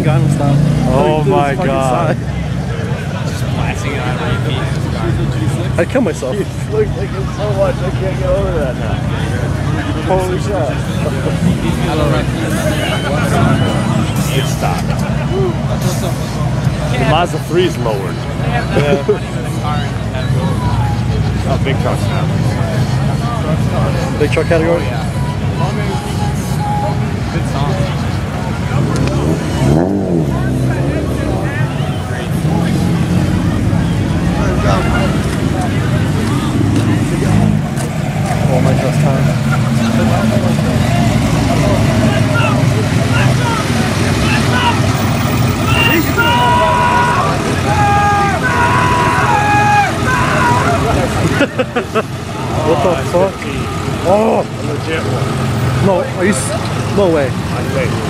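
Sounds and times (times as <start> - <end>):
cars and trucks driving past: 0.0 - 58.0
crowd chatter: 0.0 - 58.0.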